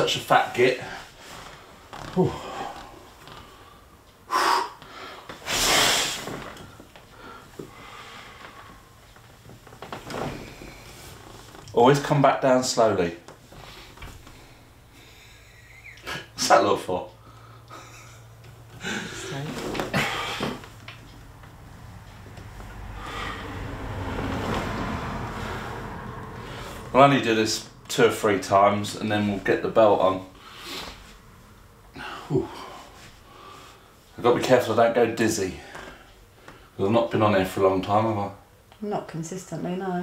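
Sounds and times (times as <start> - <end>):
man breathing hard and straining: 0.8 - 9.0, 17.2 - 20.7, 22.7 - 27.0, 31.9 - 34.1
man exhaling forcefully: 4.3 - 6.3, 19.9 - 20.6, 22.9 - 24.0
low steady rumble: 6.7 - 34.3.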